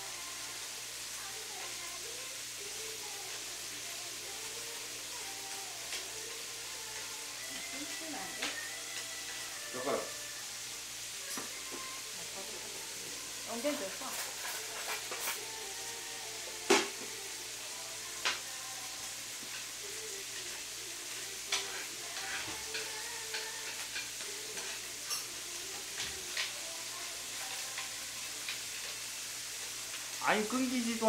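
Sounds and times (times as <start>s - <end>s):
meat sizzling in a pan: 0.0s - 31.0s.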